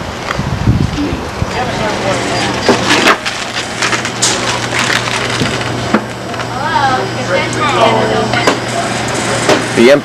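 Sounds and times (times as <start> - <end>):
man speaking: 9.8 - 10.0.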